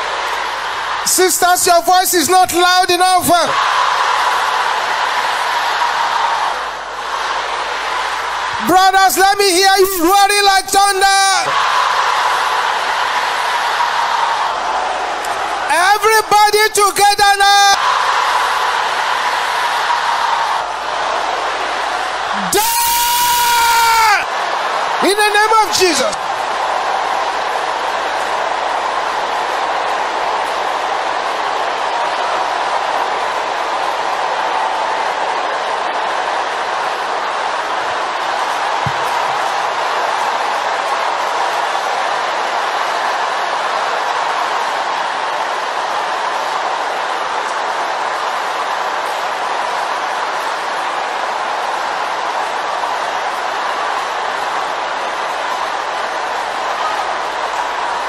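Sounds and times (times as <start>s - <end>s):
congregation praying aloud: 0.0s - 29.0s.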